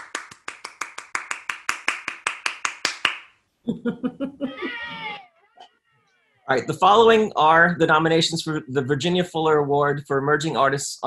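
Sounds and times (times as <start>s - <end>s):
bursts of laughter: 3.7s - 6.7s
high drawn-out call: 4.4s - 7.1s.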